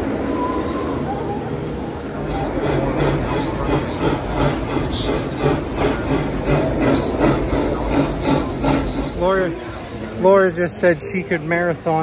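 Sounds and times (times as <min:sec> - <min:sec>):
steam locomotive passing: 0:02.0 - 0:09.9.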